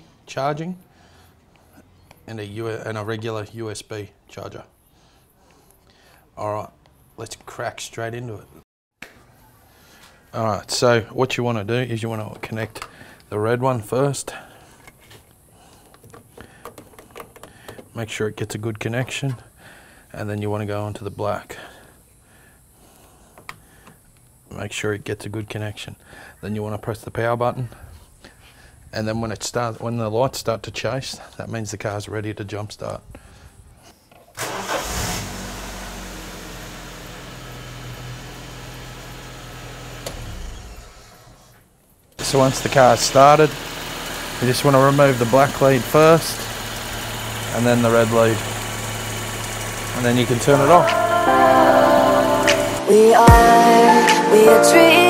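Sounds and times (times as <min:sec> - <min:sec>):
car engine starting and idling: 0:34.4 - 0:41.4, 0:42.2 - 0:53.5.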